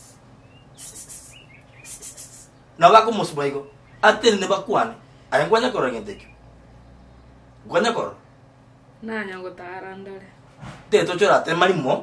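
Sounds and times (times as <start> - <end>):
soft hiss bursts: 0.0 - 0.2, 0.8 - 2.5
faint bird chirps: 0.0 - 2.8, 3.5 - 4.2, 5.8 - 7.5.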